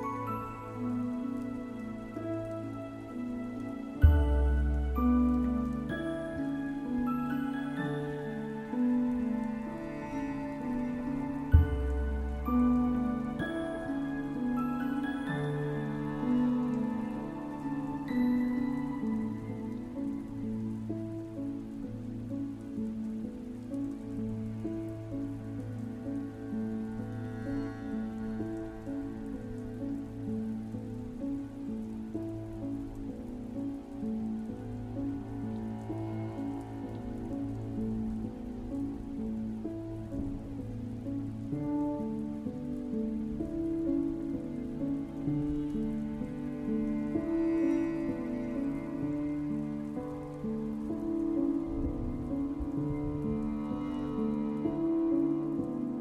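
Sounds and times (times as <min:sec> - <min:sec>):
low sustained tone: 0:00.0 - 0:56.0
piano and harp relaxation music: 0:00.0 - 0:56.0
rain: 0:00.0 - 0:56.0.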